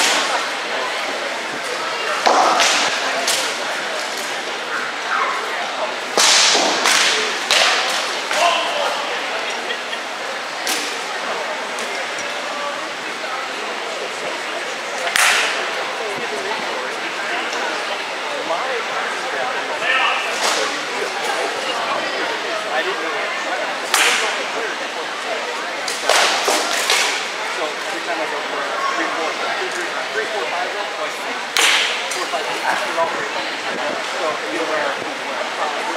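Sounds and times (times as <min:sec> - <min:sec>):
crowd chatter: 0:00.0 - 0:35.9
sharp crack: 0:02.2 - 0:04.3, 0:06.1 - 0:08.7, 0:15.1 - 0:15.6, 0:23.9 - 0:24.4, 0:25.9 - 0:27.4, 0:31.6 - 0:32.3.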